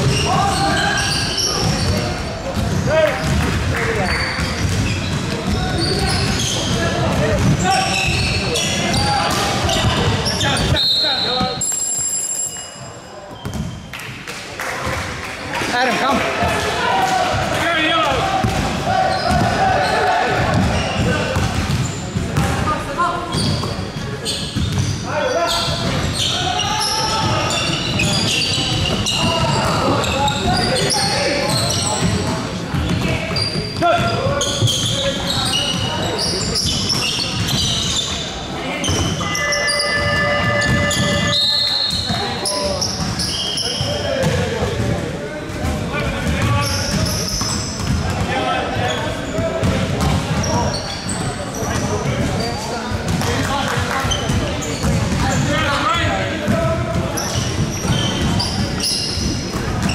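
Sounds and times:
players calling out: 15.6 - 59.2.

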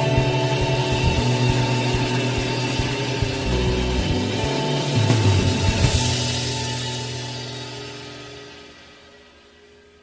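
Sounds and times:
rock song with guitars bass and drums: 0.0 - 9.1.

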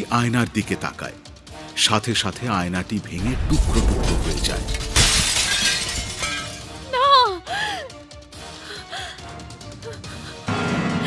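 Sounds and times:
dramatic background music: 0.0 - 11.0
mirror shattering: 3.4 - 6.8.

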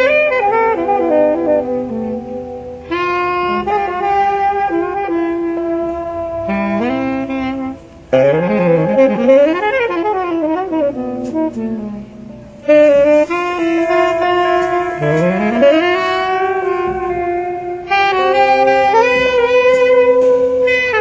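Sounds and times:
jazz saxophones and electric guitar: 0.0 - 21.0.

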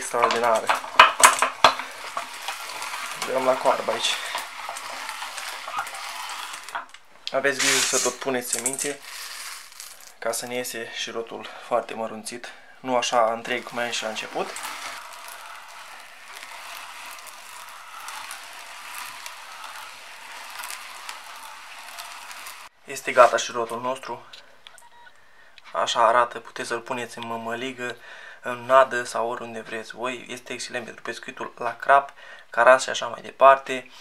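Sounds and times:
metal scraping: 0.0 - 10.2, 13.0 - 23.5
meat grinder crunching seeds: 0.0 - 10.4, 13.0 - 23.6.

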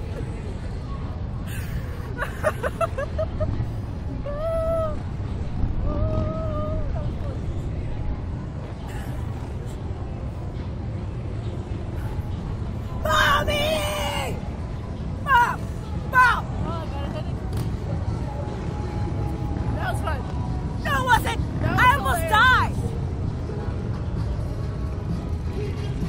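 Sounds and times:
faint voices: 0.0 - 26.0
low wind rumble: 0.0 - 26.0
person laughing: 1.5 - 3.5.

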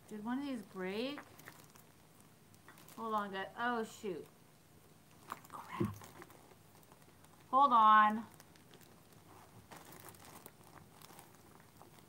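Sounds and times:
crinkling and light clicks of glass: 0.0 - 3.4, 5.1 - 12.0.

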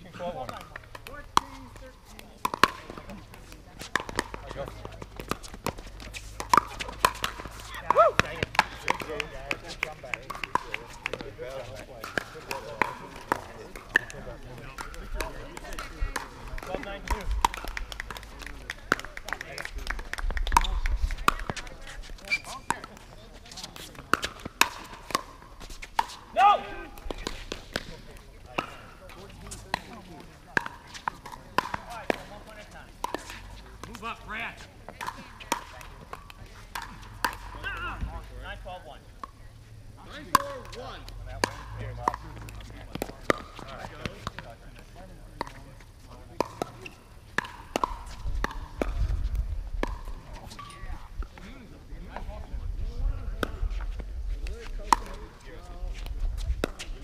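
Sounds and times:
paddles striking plastic ball: 0.5 - 11.3, 46.4 - 49.0.

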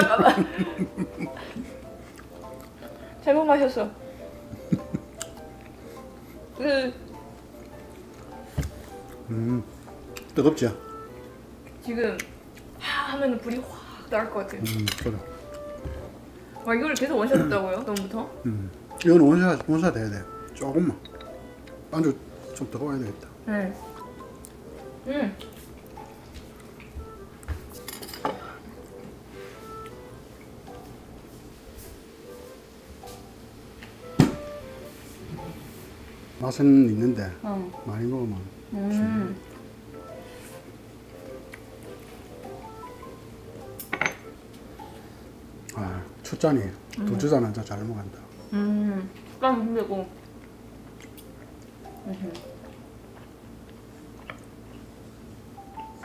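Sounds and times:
soft background music: 0.0 - 56.0
person chewing food: 0.9 - 3.2, 4.8 - 6.5, 7.1 - 10.4, 25.4 - 27.8, 39.4 - 43.0, 50.1 - 55.0
dishes and cutlery clinking: 14.6 - 16.1, 27.5 - 29.1, 43.7 - 44.4.

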